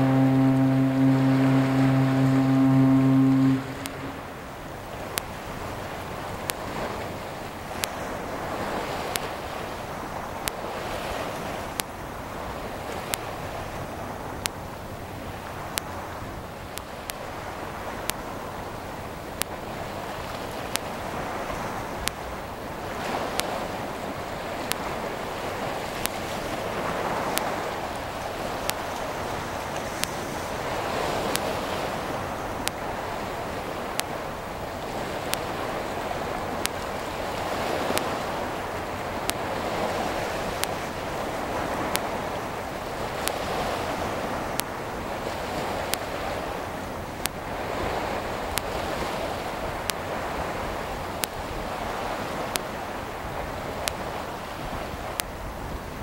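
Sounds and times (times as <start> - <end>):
deep ship's horn blast: 0.0 - 9.1, 34.8 - 46.6
choppy water washing: 0.0 - 56.0
wind on microphone: 0.0 - 56.0.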